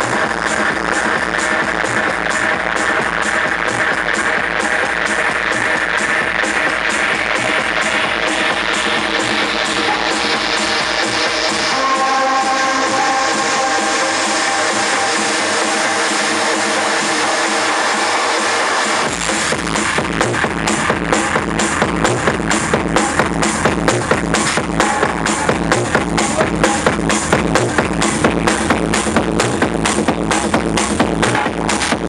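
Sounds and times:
bass drum beat: 0:00.0 - 0:32.0
electronic dance music: 0:00.0 - 0:32.0.

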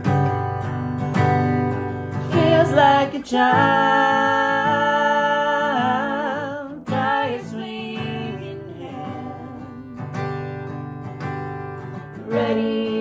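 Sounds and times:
strummed acoustic guitar: 0:00.0 - 0:13.0
man and woman singing: 0:02.1 - 0:10.2, 0:12.0 - 0:13.0.

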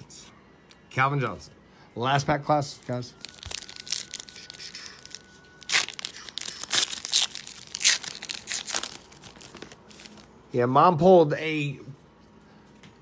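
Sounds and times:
wrapper tearing and crinkling: 0:03.1 - 0:10.3.

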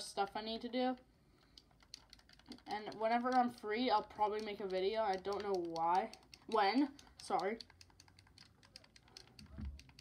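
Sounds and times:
quick irregular clicking: 0:01.4 - 0:10.0.

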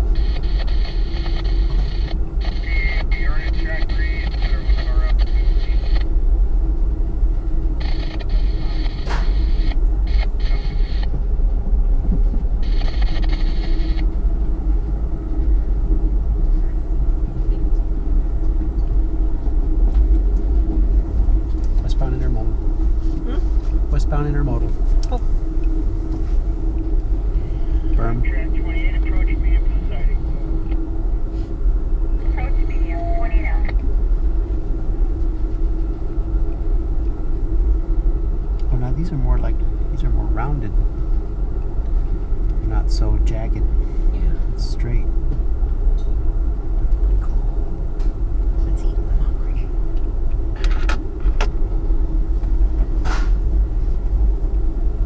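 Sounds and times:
faint passenger voices: 0:00.0 - 0:06.2, 0:07.3 - 0:36.1, 0:38.6 - 0:45.1, 0:46.8 - 0:50.9
constant hum: 0:00.0 - 0:55.0
train car rumbling on track: 0:00.0 - 0:55.0.

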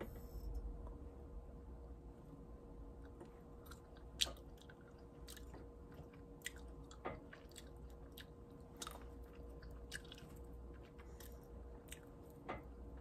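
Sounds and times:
person chewing berries: 0:03.0 - 0:13.0.

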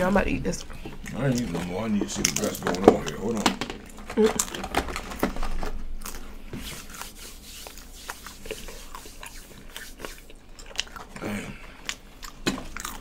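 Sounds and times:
crunchy biting and chewing: 0:00.8 - 0:13.0.

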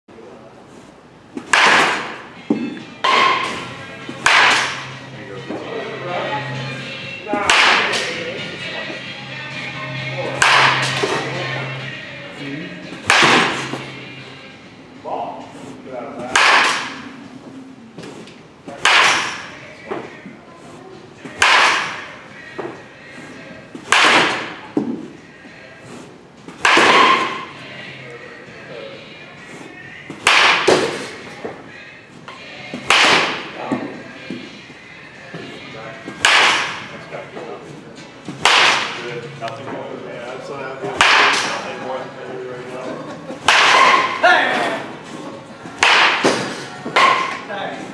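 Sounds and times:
baseball bat cracking ball: 0:01.4 - 0:05.0, 0:07.4 - 0:08.3, 0:10.3 - 0:11.3, 0:13.0 - 0:13.9, 0:16.2 - 0:17.1, 0:18.8 - 0:20.1, 0:21.3 - 0:22.2, 0:23.8 - 0:25.0, 0:26.6 - 0:27.6, 0:30.1 - 0:31.2, 0:32.8 - 0:33.6, 0:36.1 - 0:37.0, 0:38.3 - 0:39.0, 0:40.9 - 0:41.7, 0:43.4 - 0:44.3, 0:45.7 - 0:47.5.

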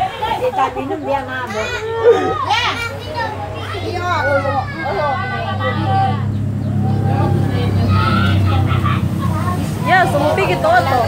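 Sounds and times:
people's voices: 0:00.0 - 0:11.0
vehicle engine running: 0:02.0 - 0:11.0.

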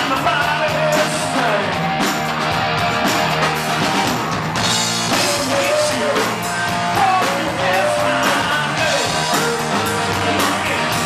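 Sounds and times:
man singing into microphone: 0:00.0 - 0:01.8, 0:05.1 - 0:11.0
drum kit with cymbals: 0:00.0 - 0:11.0
electric guitar: 0:00.0 - 0:11.0.

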